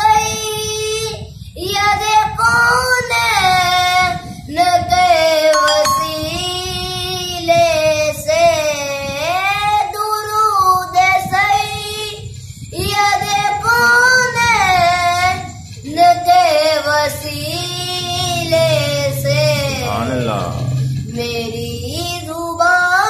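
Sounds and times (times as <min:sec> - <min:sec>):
boy singing devotional song: 0:00.0 - 0:23.0.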